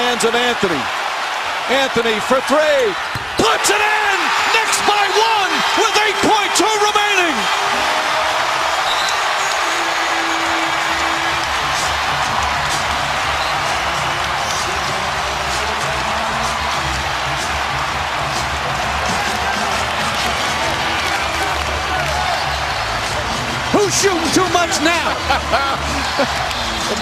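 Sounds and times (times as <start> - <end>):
crowd cheering and applauding: 0.0 - 27.0
music playing: 3.9 - 27.0.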